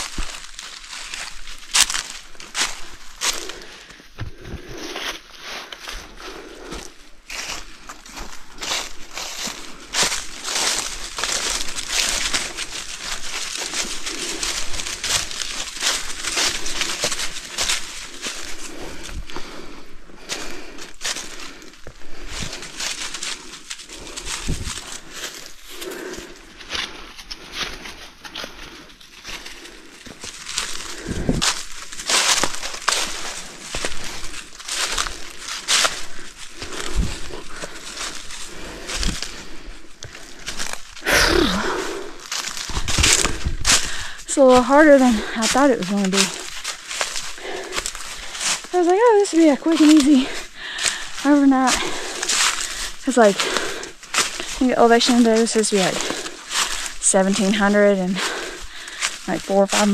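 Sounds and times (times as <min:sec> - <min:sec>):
footsteps crunching on dirt trail: 0:00.0 - 0:59.9.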